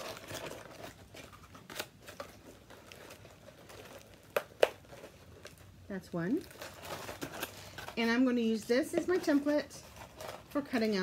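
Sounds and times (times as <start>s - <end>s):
paper crinkling: 0.0s - 11.0s.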